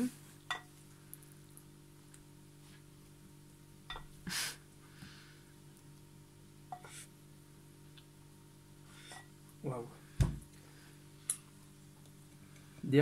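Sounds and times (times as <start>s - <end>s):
spoon clinking against glass bowl: 0.5s - 0.7s.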